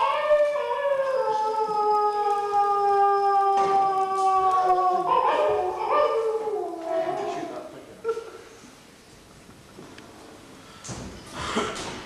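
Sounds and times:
long wavering howl: 0.0 - 7.6.

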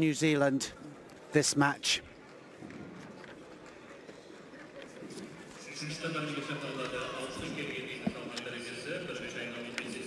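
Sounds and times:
crowd ambience in a hall: 0.0 - 10.0.

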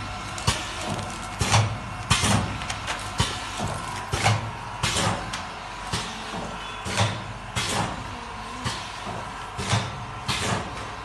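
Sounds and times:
machine motor hum: 0.0 - 11.0.

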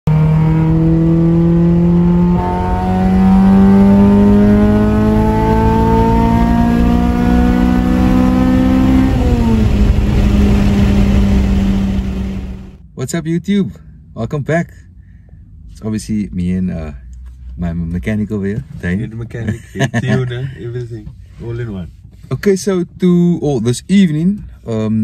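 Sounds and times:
car engine accelerating: 0.0 - 12.8.

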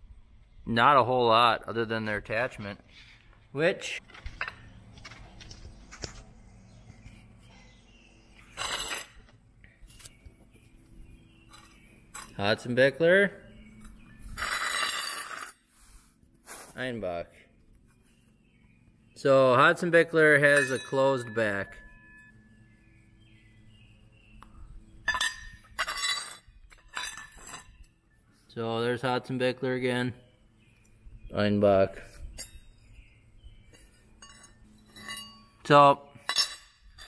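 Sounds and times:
metal shovel scraping concrete: 8.4 - 9.3, 14.3 - 16.7, 25.1 - 27.8.

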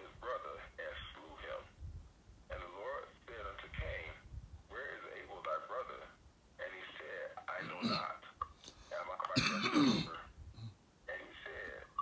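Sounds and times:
man clearing his throat: 7.6 - 8.1, 9.4 - 10.8.

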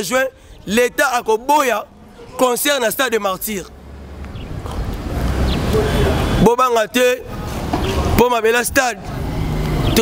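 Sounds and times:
man speaking: 0.0 - 3.8, 5.7 - 7.3, 8.0 - 9.0
street traffic: 0.0 - 10.0
vehicle engine humming low: 3.1 - 6.6, 7.2 - 10.0.

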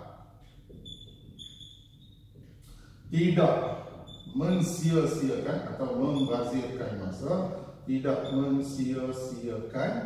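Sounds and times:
whiteboard marker squeaking: 0.5 - 2.6, 3.9 - 4.4, 6.1 - 6.7.

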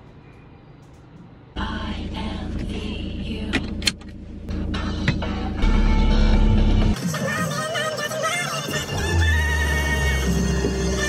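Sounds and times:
car engine rumble: 0.8 - 11.0.

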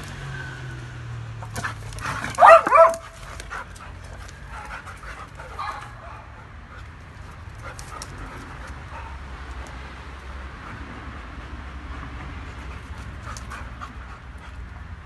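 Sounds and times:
dogs playing clicks and scuffles: 1.4 - 15.0
dog barking: 2.2 - 3.2, 5.6 - 6.4.

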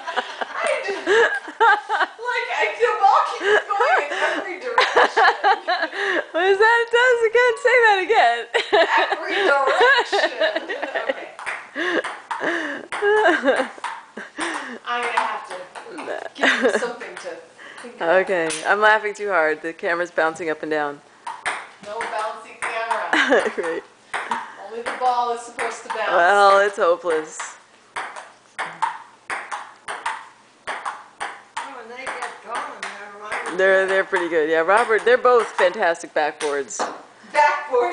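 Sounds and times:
person laughing: 0.0 - 2.2, 3.3 - 6.4, 8.5 - 14.8, 23.1 - 23.8
table tennis ball clicking: 13.6 - 16.1, 21.2 - 35.8.

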